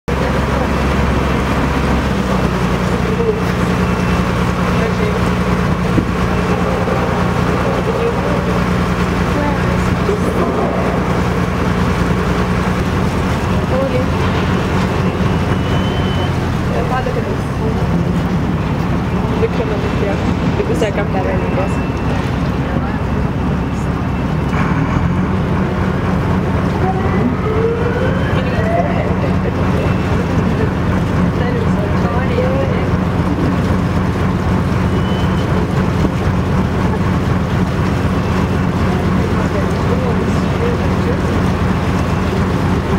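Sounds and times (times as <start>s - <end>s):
motorboat engine droning: 0.0s - 42.9s.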